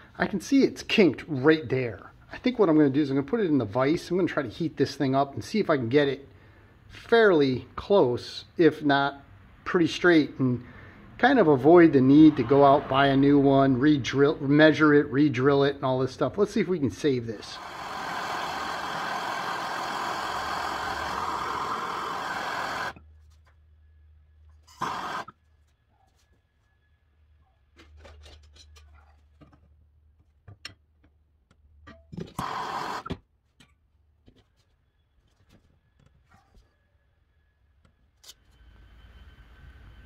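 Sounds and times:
gas torch hissing: 0:17.0 - 0:23.0, 0:24.7 - 0:25.3, 0:32.3 - 0:33.2
flame bursts: 0:17.2 - 0:23.0, 0:24.6 - 0:25.3, 0:32.3 - 0:33.1.

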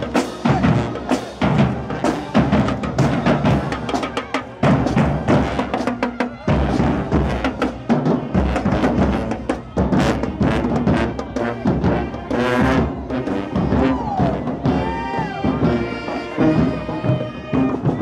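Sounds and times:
bass and snare drums: 0:00.0 - 0:18.0
brass horns: 0:00.0 - 0:18.0
marching band playing: 0:00.0 - 0:18.0.

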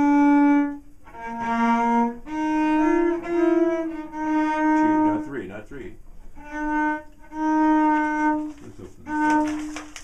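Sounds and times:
cello bowed notes: 0:00.0 - 0:10.0.

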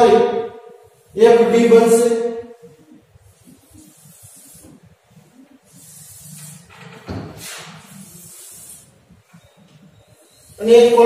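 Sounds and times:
chalk scratching on chalkboard: 0:02.6 - 0:06.8, 0:07.4 - 0:11.0.

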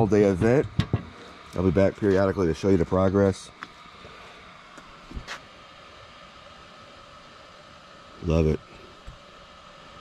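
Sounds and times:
small blower fan whining: 0:00.0 - 0:10.0.

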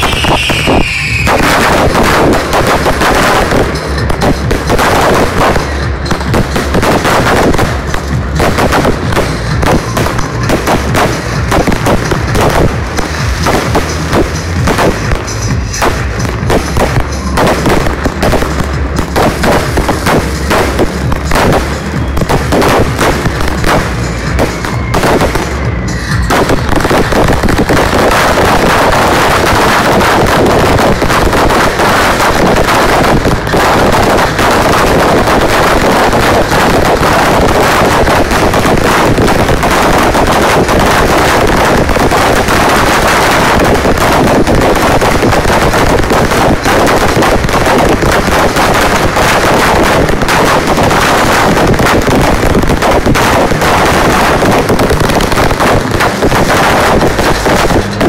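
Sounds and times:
fireworks bangs and crackles: 0:00.0 - 0:58.0
hissing firework fountains: 0:00.0 - 0:58.0.

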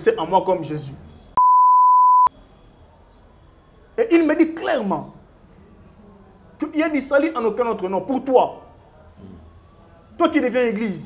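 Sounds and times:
high censor beep: 0:01.4 - 0:02.3.

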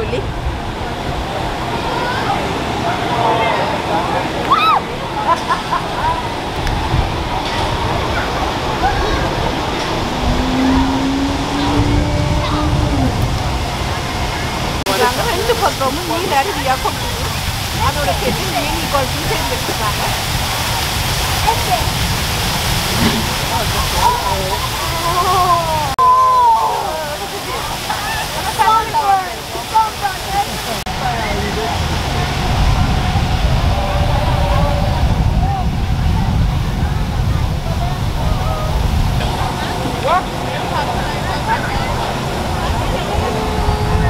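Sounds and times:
people calling out and talking: 0:00.0 - 0:44.0
water rushing down rock waterfall: 0:00.0 - 0:44.0.

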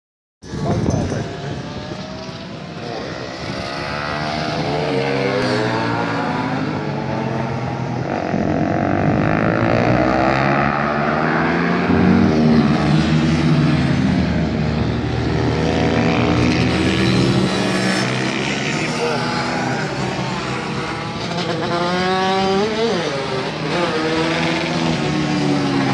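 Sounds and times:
motorcycle engines revving: 0:00.4 - 0:25.9.

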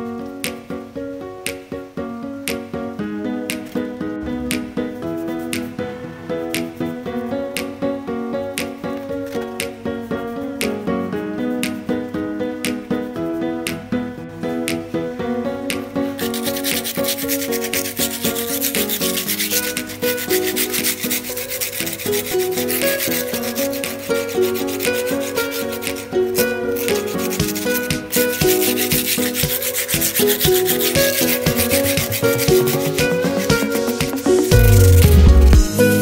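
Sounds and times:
guitar music: 0:01.9 - 0:10.0, 0:22.0 - 0:36.0
sanding pad scraping cement: 0:16.2 - 0:35.5.

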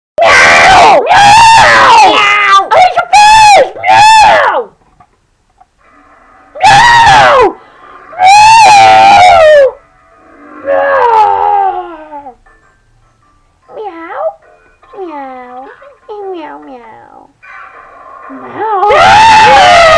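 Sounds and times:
cat yowling angrily: 0:00.2 - 0:02.7, 0:06.6 - 0:07.5, 0:08.2 - 0:09.7, 0:10.7 - 0:11.9, 0:18.8 - 0:19.9.

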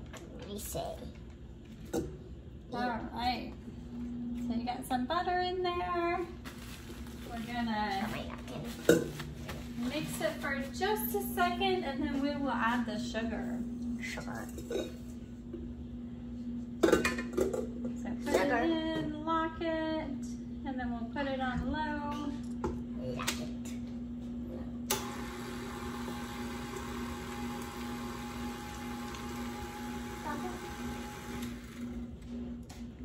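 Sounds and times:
stand mixer motor whining: 0:24.9 - 0:32.2.

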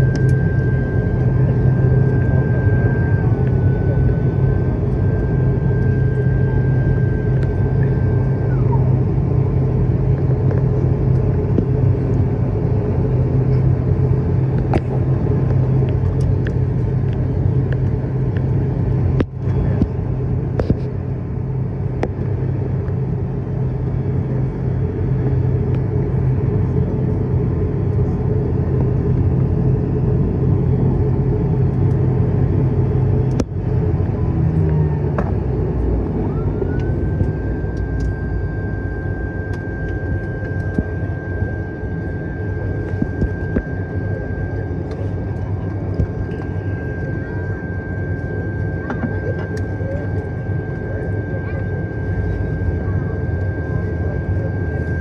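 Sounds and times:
high engine whine: 0:00.0 - 0:55.0
turboprop engine drone: 0:00.0 - 0:55.0.

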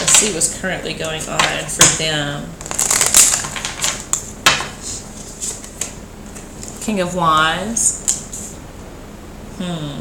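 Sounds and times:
cards being shuffled: 0:02.6 - 0:06.8.

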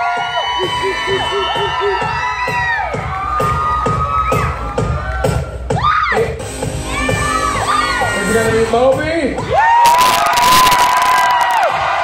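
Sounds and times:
audience cheering and whooping: 0:00.0 - 0:06.3, 0:09.4 - 0:12.0
loud music with steady beat: 0:00.0 - 0:12.0.

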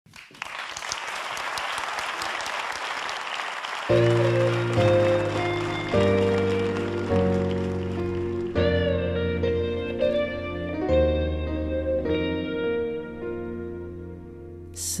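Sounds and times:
audience applauding: 0:00.1 - 0:09.0
song with sustained chords: 0:03.9 - 0:14.8.

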